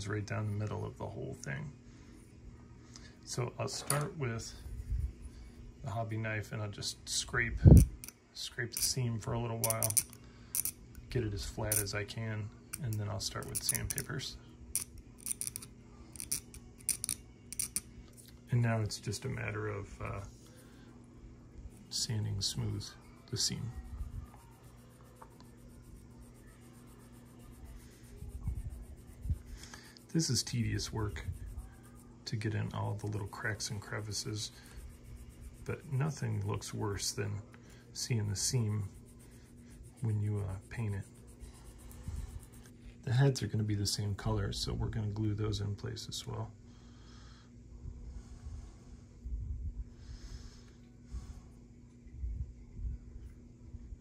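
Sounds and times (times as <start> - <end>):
faint steady low hum: 0.0 - 54.0.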